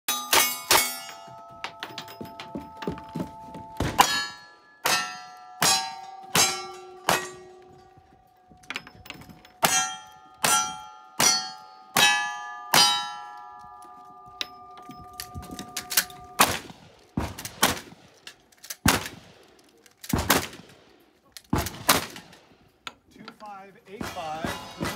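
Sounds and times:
steel plate target ringing: 0.1 - 16.7.

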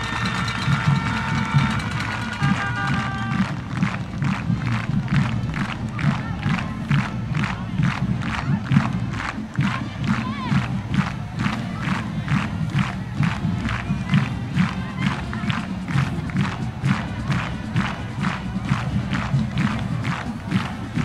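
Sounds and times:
crowd noise: 0.0 - 21.0
marching band playing: 0.0 - 21.0.

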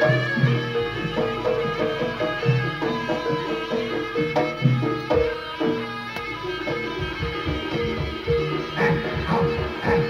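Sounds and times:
drum strokes: 0.0 - 10.0
repeating pitched notes: 0.0 - 10.0.

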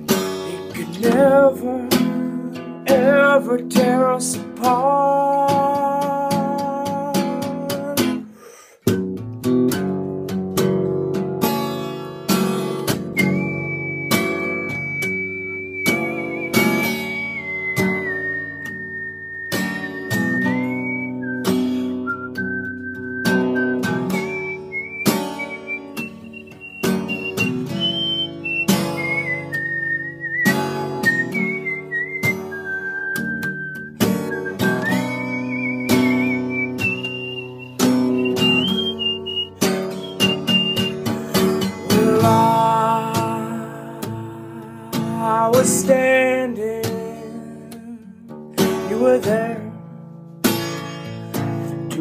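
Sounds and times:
acoustic guitar strummed: 0.0 - 52.0
man whistling a melody: 0.3 - 8.3, 11.8 - 49.8.

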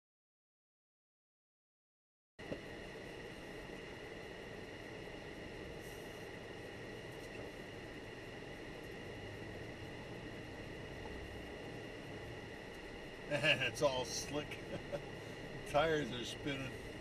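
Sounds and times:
high whine: 2.4 - 17.0.

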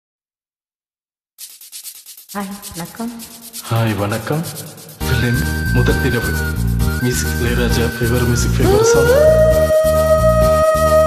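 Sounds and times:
shaker percussion: 1.4 - 11.0.

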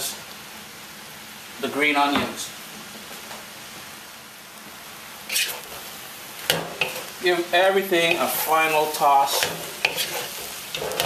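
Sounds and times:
food sizzling in a wok: 0.0 - 11.0
spatula tossing food: 5.2 - 11.0.

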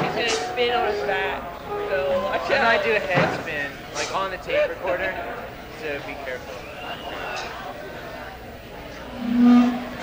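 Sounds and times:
murmur of voices: 0.0 - 10.0
steady tone: 9.1 - 10.0.

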